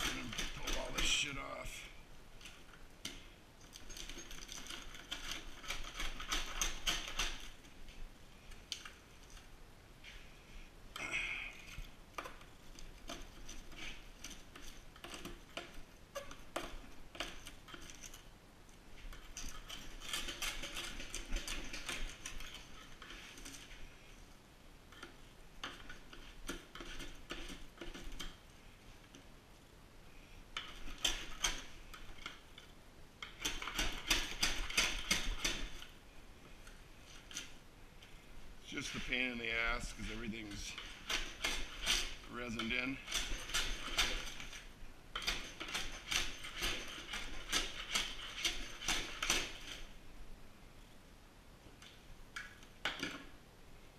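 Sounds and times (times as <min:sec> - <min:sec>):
brittle scratching and clicking: 0:00.0 - 0:01.4, 0:02.4 - 0:07.8, 0:11.7 - 0:23.8, 0:24.9 - 0:28.4, 0:38.7 - 0:49.9.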